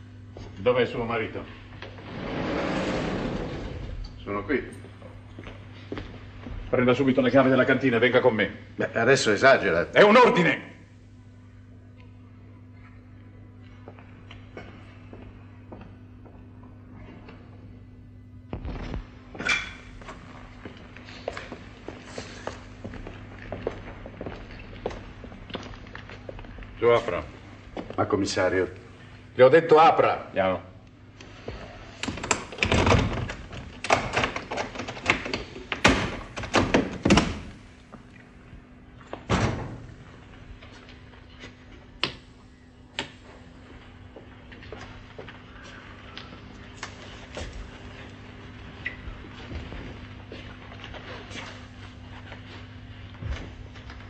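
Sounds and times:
steady low hum: 0:00.0 - 0:54.0
faint footsteps: 0:04.8 - 0:07.0, 0:13.6 - 0:17.7, 0:18.6 - 0:28.1, 0:43.2 - 0:54.0
door slamming shut: 0:39.3 - 0:39.9.

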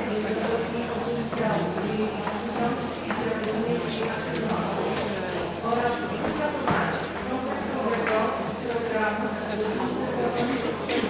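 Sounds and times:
echoing indistinct speech: 0:00.0 - 0:11.0
murmur of voices: 0:00.0 - 0:11.0.

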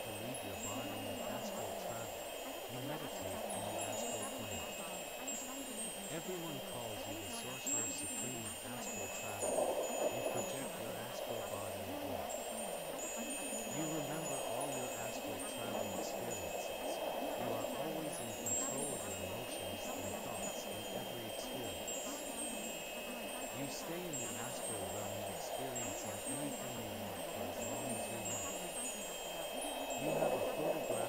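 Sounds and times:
low wavering drone: 0:00.0 - 0:31.0
steady high hum: 0:00.0 - 0:31.0
twinkling chime tones: 0:00.0 - 0:31.0.

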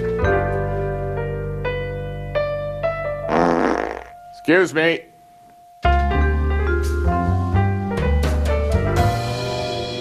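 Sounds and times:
soft keyboard music: 0:00.0 - 0:03.3, 0:03.9 - 0:10.0
loud fart: 0:03.3 - 0:04.2.

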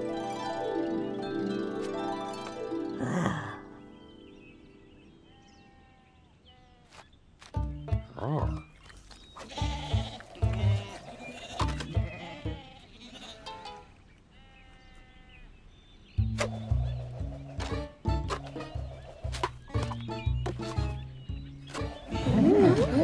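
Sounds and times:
light background music: 0:07.5 - 0:08.8, 0:09.4 - 0:12.8, 0:16.2 - 0:23.0
cartoon sheep bleating: 0:09.4 - 0:13.7.

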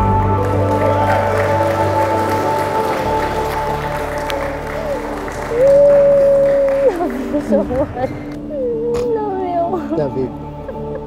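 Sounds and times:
loud long held note: 0:00.0 - 0:07.3
people applauding: 0:00.0 - 0:08.4
background music: 0:00.0 - 0:11.0.

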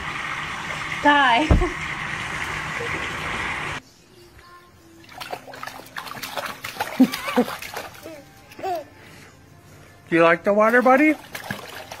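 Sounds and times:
water splashing in a tub: 0:00.0 - 0:03.8, 0:05.0 - 0:08.1, 0:10.5 - 0:12.0
baby squealing laughter: 0:06.8 - 0:08.9.

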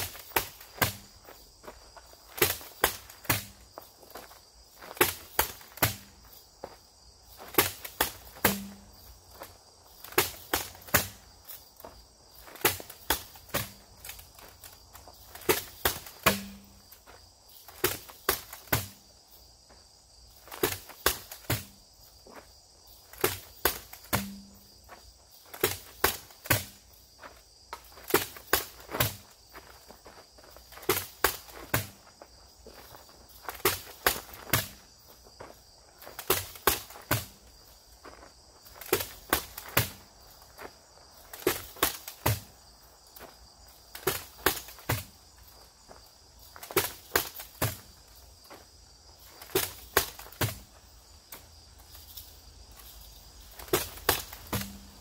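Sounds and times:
axe striking rubber tires: 0:00.0 - 0:01.3, 0:02.3 - 0:04.2, 0:04.8 - 0:06.4, 0:07.4 - 0:14.5, 0:15.3 - 0:17.0, 0:17.7 - 0:19.1, 0:20.4 - 0:21.9, 0:23.1 - 0:27.0, 0:28.0 - 0:29.3, 0:30.8 - 0:32.0, 0:33.5 - 0:34.8, 0:36.2 - 0:37.5, 0:38.8 - 0:40.1, 0:41.3 - 0:42.6, 0:44.0 - 0:45.2, 0:46.6 - 0:48.0, 0:49.4 - 0:50.7, 0:53.6 - 0:55.0
insects chirring: 0:00.0 - 0:55.0.

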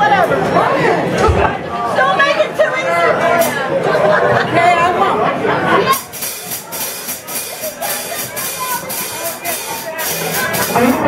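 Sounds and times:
room chatter: 0:00.0 - 0:11.0
people laughing: 0:02.8 - 0:06.0, 0:07.3 - 0:11.0
faint electric guitar notes: 0:10.1 - 0:11.0.

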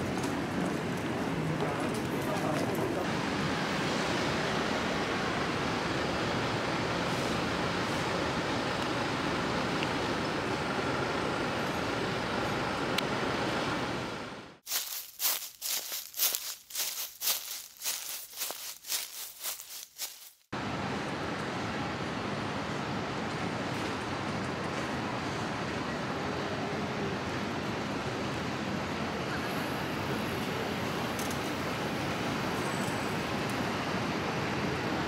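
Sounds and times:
city street traffic noise: 0:00.0 - 0:35.0
sharp irregular crackling: 0:14.6 - 0:20.5.

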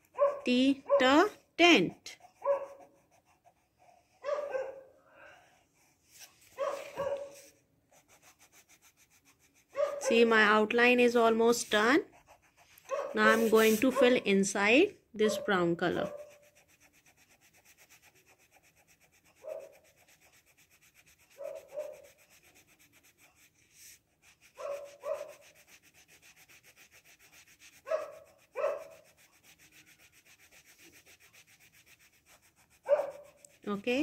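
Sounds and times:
pencil rubbing on paper: 0:00.4 - 0:04.6, 0:05.6 - 0:14.7, 0:15.4 - 0:34.0.

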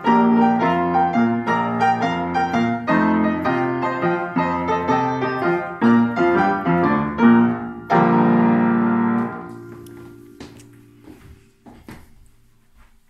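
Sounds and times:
piano duet: 0:00.0 - 0:11.6.

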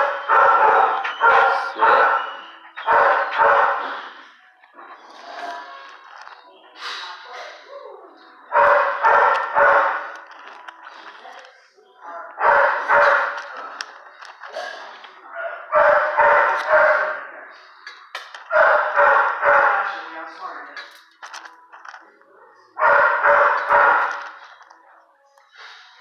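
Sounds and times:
dog barking: 0:00.0 - 0:04.2, 0:08.5 - 0:10.2, 0:12.2 - 0:13.6, 0:15.3 - 0:17.3, 0:18.4 - 0:20.1, 0:22.8 - 0:24.4.

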